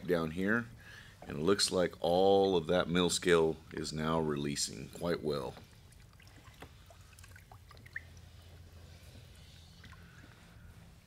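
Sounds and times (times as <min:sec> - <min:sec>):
low steady hum: 0:00.0 - 0:11.0
liquid sloshing: 0:05.5 - 0:10.7.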